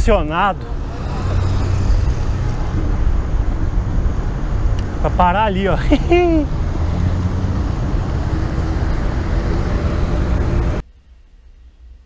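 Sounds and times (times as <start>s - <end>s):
wind rushing over microphone: 0.0s - 10.8s
faint road and traffic noise: 0.0s - 12.0s.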